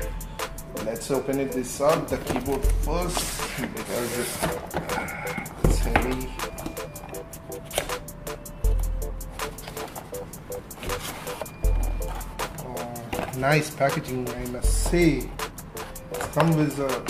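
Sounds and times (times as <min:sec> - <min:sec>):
background music with pitched notes: 0:00.0 - 0:17.0.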